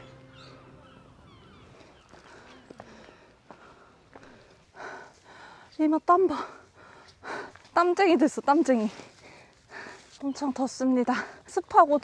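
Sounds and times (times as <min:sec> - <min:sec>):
high chirps: 0:00.0 - 0:02.1.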